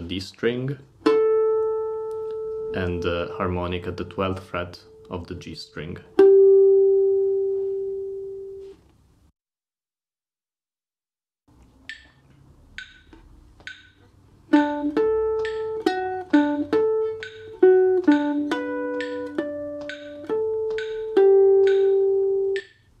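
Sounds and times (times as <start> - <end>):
metronome clicks: 1.1 - 3.4, 11.8 - 23.0
guitar single notes and harmonics: 1.1 - 8.8, 14.6 - 22.7.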